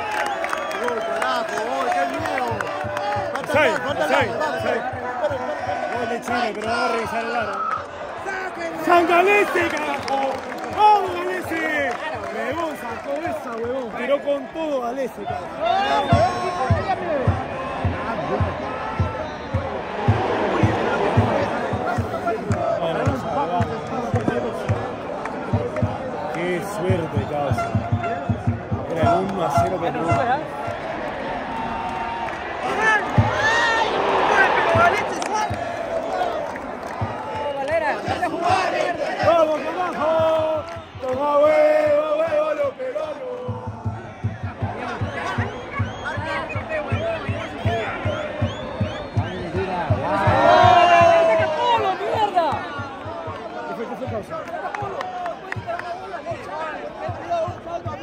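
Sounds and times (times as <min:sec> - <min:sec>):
crowd chanting and shouting: 0:00.0 - 0:58.0.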